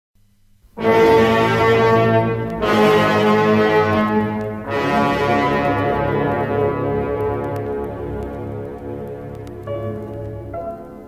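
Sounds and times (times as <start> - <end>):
held brass-like chord: 0.8 - 10.2.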